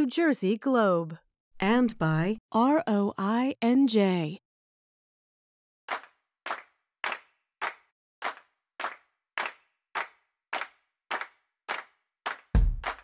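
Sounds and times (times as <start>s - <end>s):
clap-like percussion beat: 5.9s - 13.0s.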